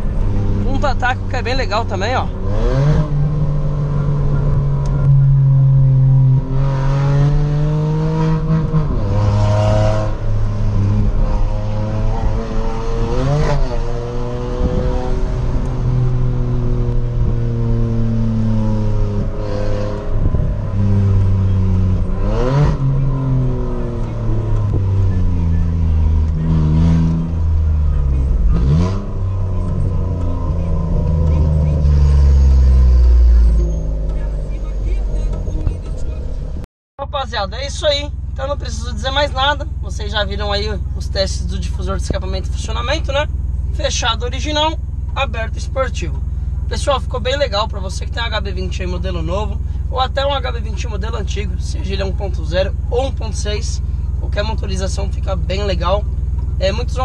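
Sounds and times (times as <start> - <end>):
car engine accelerating through gears: 2.0 - 36.6.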